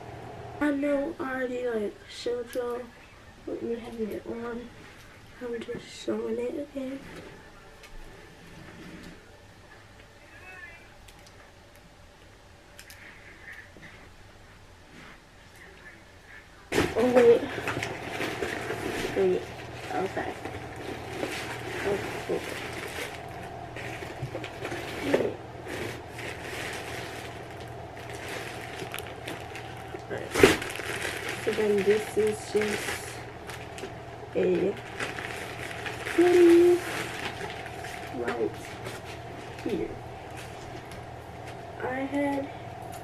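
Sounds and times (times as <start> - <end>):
plastic packaging rustling: 16.7 - 41.7.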